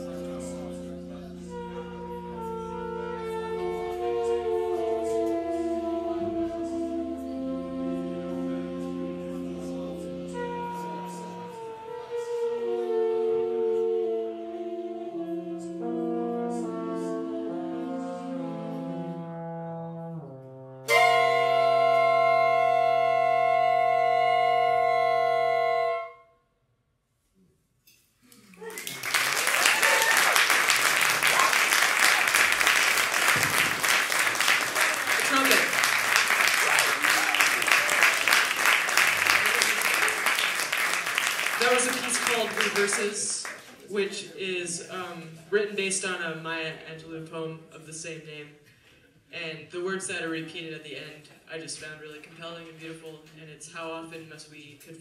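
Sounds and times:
big band horn section chords: 0:00.0 - 0:26.2, 0:29.0 - 0:43.6
audience applause: 0:28.5 - 0:43.7.

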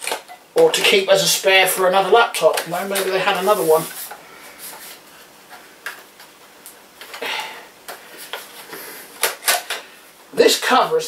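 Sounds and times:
person speaking: 0:00.5 - 0:04.7.

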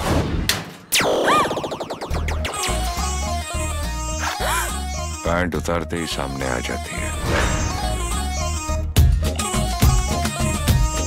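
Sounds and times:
music beat: 0:01.0 - 0:03.5.

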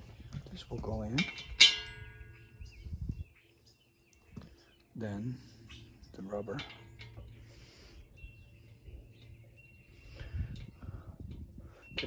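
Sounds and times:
bolt clinking on metal drum: 0:01.0 - 0:02.3.

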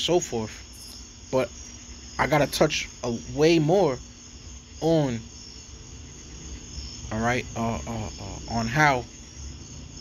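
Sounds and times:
man speaking: 0:00.0 - 0:00.7, 0:01.3 - 0:01.6, 0:02.2 - 0:04.1, 0:04.8 - 0:05.3, 0:07.1 - 0:09.2
crickets chirping: 0:00.0 - 0:10.0.

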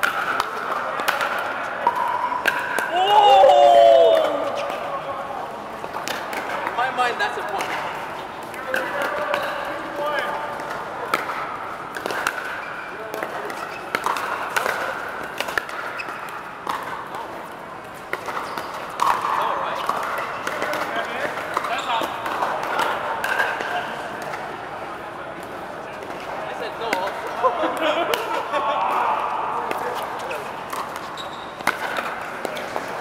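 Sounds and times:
paddles hitting plastic ball: 0:00.0 - 0:03.0, 0:05.8 - 0:24.6, 0:29.6 - 0:33.0
murmur of voices: 0:18.8 - 0:31.1.

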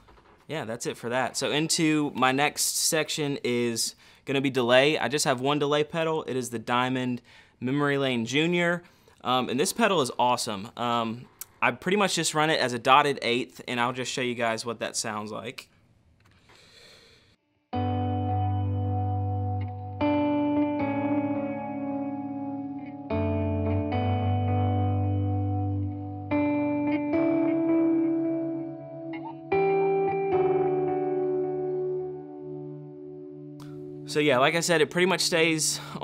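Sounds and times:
electric guitar with delay echoes: 0:17.8 - 0:36.0.

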